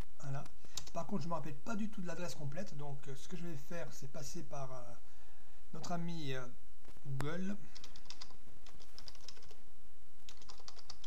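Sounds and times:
typing on a computer keyboard: 0:00.8 - 0:01.0, 0:07.8 - 0:09.6, 0:10.3 - 0:11.0.

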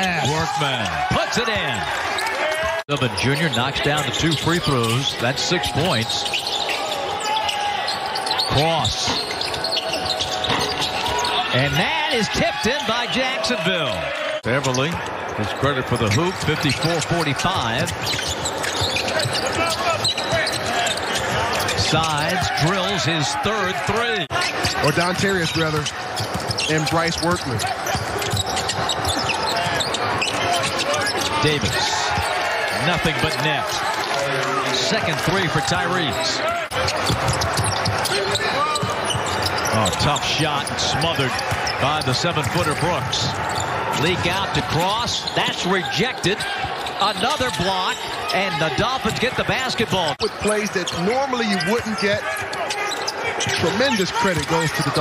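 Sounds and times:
players calling out: 0:00.0 - 0:55.0
sneakers squeaking on hardwood: 0:01.8 - 0:11.8, 0:14.6 - 0:23.1, 0:23.7 - 0:55.0.

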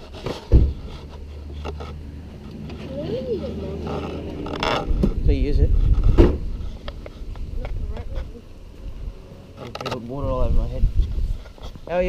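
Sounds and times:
wind buffeting microphone: 0:03.0 - 0:12.0.

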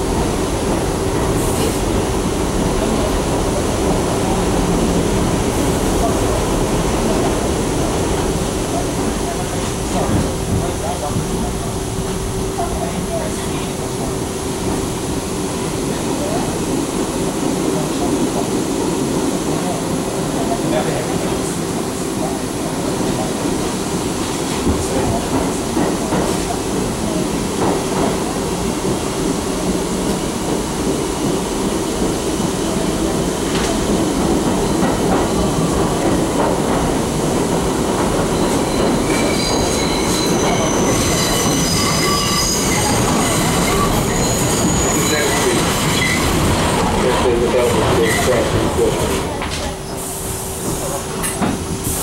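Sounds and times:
subway wheels rumbling on rail: 0:00.0 - 0:52.0
high metallic squeal: 0:38.4 - 0:46.2.

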